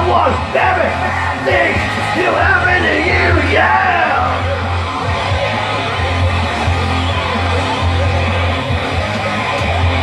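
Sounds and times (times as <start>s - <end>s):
person yelling vocals: 0.0s - 4.4s
live rock music: 0.0s - 10.0s.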